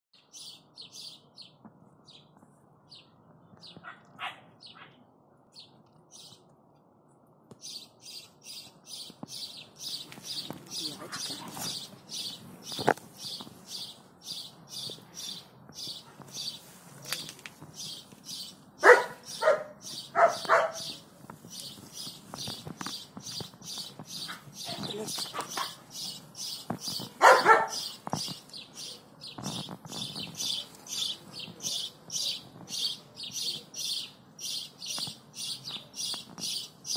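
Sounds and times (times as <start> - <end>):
small bird chirping: 7.6 - 36.9.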